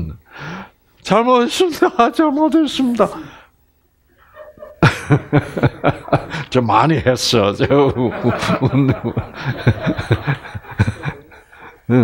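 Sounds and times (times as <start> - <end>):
man speaking: 1.0 - 3.4, 6.0 - 9.1.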